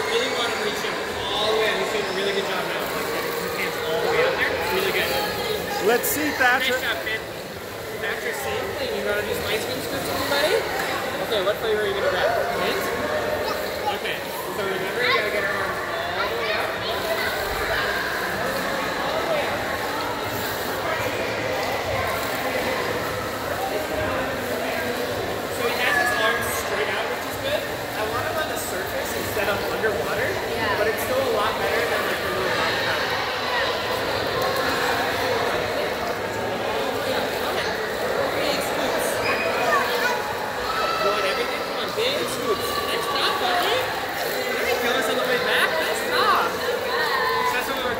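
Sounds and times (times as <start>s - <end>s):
water splashing: 0.0s - 47.9s.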